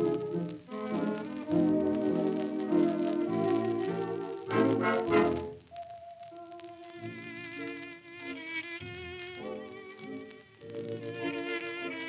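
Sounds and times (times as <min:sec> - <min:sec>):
dance orchestra playing a waltz: 0:00.0 - 0:05.6
violin melody with vibrato: 0:06.8 - 0:12.0.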